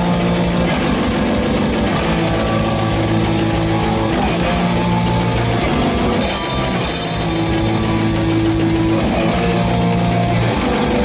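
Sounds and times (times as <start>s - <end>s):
distorted electric guitars: 0.0s - 11.0s
fast drumming: 0.0s - 11.0s.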